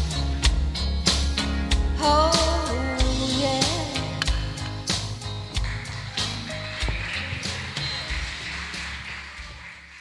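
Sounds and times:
bass: 0:00.0 - 0:10.0
drums: 0:00.0 - 0:10.0.

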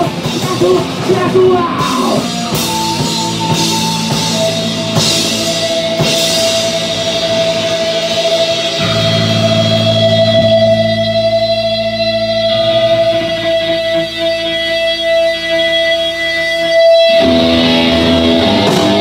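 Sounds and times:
drumming: 0:00.0 - 0:10.8, 0:17.0 - 0:19.0
electric guitar high note: 0:00.0 - 0:19.0
ringing low guitar chords: 0:00.0 - 0:19.0.

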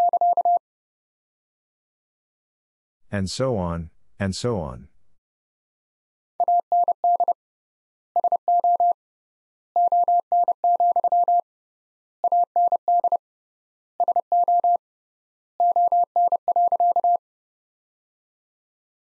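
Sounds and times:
morse code beeps: 0:00.0 - 0:00.6, 0:06.4 - 0:07.4, 0:08.2 - 0:09.0.

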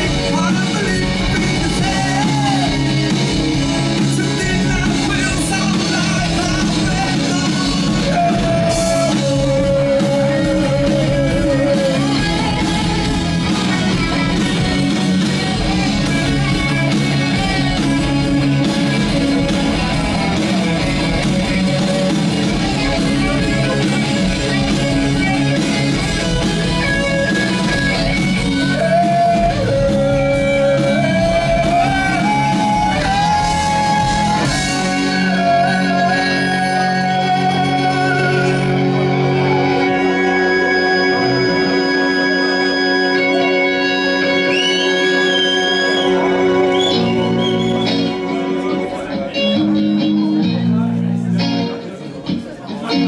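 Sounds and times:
electric guitar: 0:00.0 - 0:53.0
live rock band: 0:00.0 - 0:53.0.

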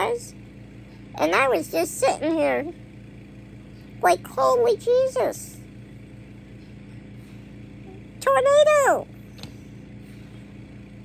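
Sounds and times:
low appliance hum: 0:00.0 - 0:11.0.

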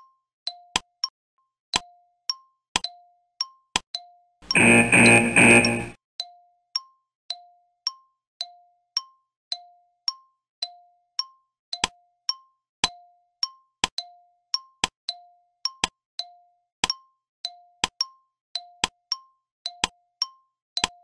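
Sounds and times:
two-note electronic tick-tock: 0:04.5 - 0:06.0.

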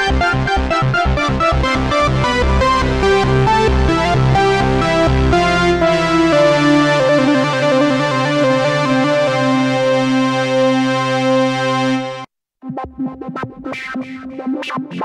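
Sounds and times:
synthesizer held chord: 0:00.1 - 0:12.3
synthesizer quick repeated notes: 0:00.7 - 0:12.2.

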